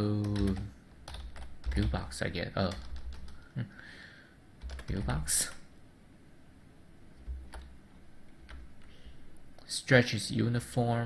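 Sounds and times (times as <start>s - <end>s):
computer keyboard typing: 0.1s - 3.4s, 4.6s - 5.6s, 7.2s - 7.8s.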